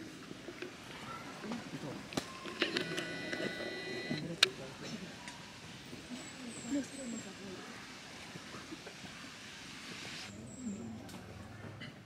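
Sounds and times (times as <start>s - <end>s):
steady hiss: 4.2s - 10.4s.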